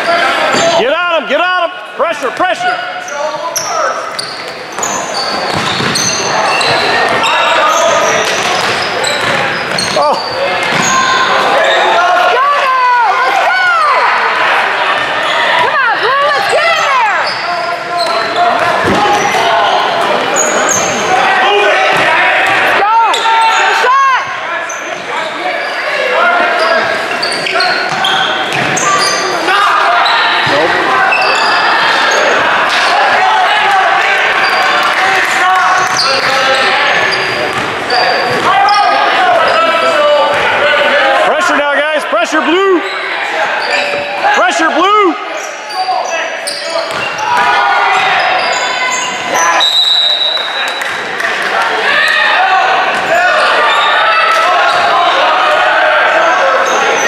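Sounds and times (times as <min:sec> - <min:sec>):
voices echoing in hall: 0:00.0 - 0:57.0
sneakers squeaking: 0:02.8 - 0:12.0, 0:14.9 - 0:32.4, 0:34.3 - 0:35.0, 0:35.7 - 0:40.6, 0:42.8 - 0:44.4, 0:45.2 - 0:55.2
basketball bouncing: 0:05.5 - 0:07.3, 0:08.2 - 0:10.0, 0:10.6 - 0:11.0, 0:37.3 - 0:38.5, 0:46.9 - 0:48.1.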